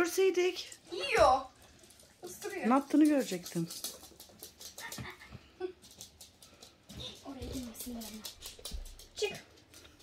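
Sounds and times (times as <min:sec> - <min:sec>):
puppy claws ticking on floor: 0:00.6 - 0:10.0.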